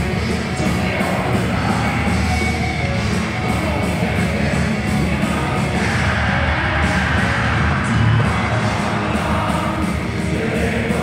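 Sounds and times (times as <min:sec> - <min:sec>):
distorted electric guitars: 0:00.0 - 0:11.0
drums: 0:00.0 - 0:11.0
keyboards: 0:00.0 - 0:11.0.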